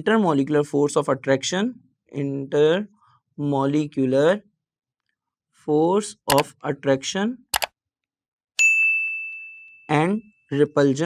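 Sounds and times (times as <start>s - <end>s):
notification bell ding: 8.6s - 10.4s.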